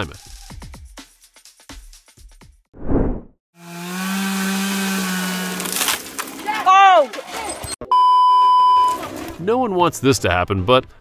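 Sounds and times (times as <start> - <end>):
transition whoosh: 2.8 - 3.3
chainsaw running: 3.6 - 6.5
person shouting: 6.5 - 7.1
censor bleep: 7.8 - 9.0.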